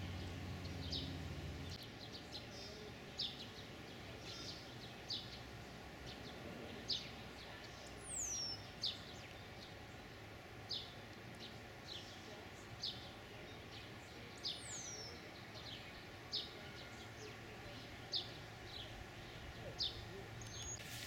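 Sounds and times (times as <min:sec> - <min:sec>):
faint outdoor hiss: 0:00.0 - 0:21.0
songbirds chirping: 0:00.0 - 0:21.0.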